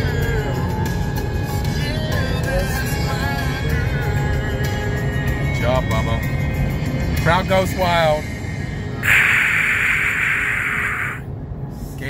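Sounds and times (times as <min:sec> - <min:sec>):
car rumbling on road: 0:00.0 - 0:12.0
person hissing breathily: 0:09.0 - 0:11.2.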